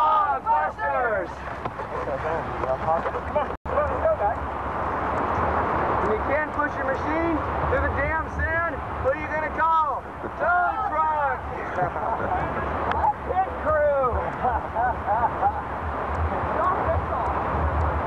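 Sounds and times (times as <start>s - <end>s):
voices calling out: 0.0s - 4.6s, 6.0s - 17.5s.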